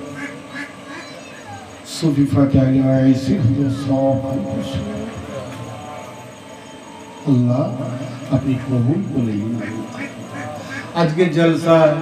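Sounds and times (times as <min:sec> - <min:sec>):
faint voices: 0:00.0 - 0:12.0
man speaking over loudspeaker: 0:01.9 - 0:06.0, 0:07.3 - 0:12.0.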